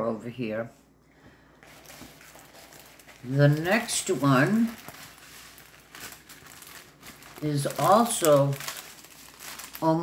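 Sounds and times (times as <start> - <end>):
packaging crinkling and rustling: 1.6 - 10.0.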